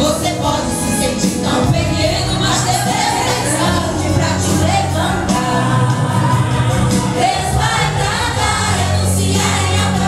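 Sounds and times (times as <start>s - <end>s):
instrumental accompaniment with bass: 0.0s - 10.0s
women singing a gospel hymn: 0.0s - 10.0s.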